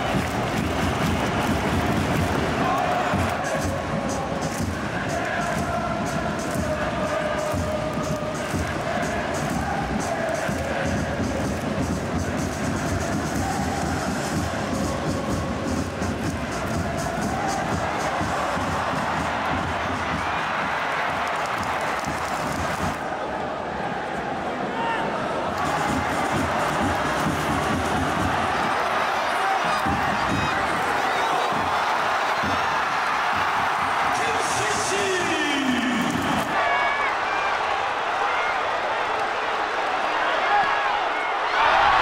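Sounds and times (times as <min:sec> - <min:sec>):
crowd singing and chanting: 0:00.0 - 0:21.9, 0:22.5 - 0:37.0
rhythmic beat: 0:00.0 - 0:23.0, 0:25.6 - 0:36.6.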